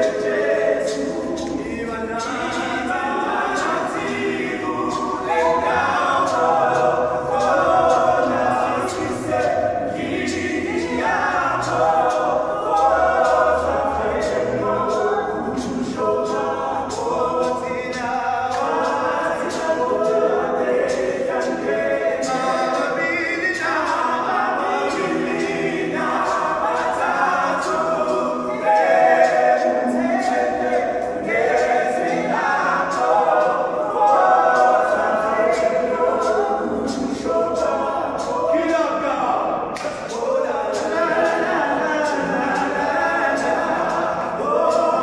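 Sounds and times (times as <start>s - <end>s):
men singing a cappella: 0.0s - 45.0s
sharp rhythmic beats: 0.0s - 45.0s.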